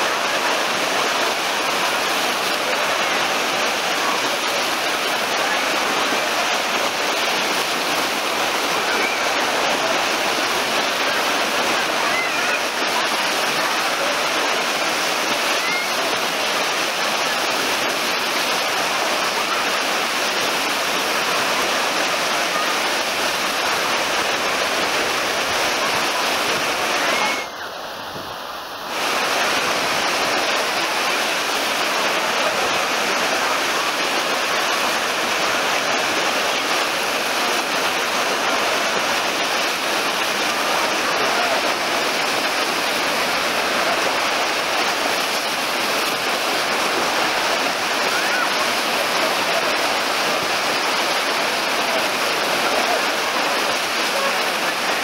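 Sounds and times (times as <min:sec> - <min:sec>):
voices of bathers: 0:00.0 - 0:28.3, 0:28.9 - 0:55.0
water rushing and churning: 0:00.0 - 0:55.0.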